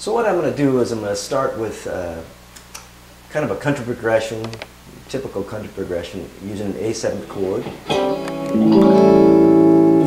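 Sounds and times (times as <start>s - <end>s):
guitar pick click: 4.4s - 4.7s, 7.8s - 9.2s
clean electric guitar chord: 7.7s - 10.0s.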